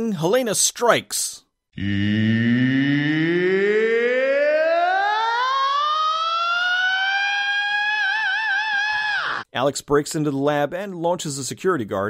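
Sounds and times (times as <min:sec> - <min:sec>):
rising siren-like tone: 0:01.8 - 0:09.5.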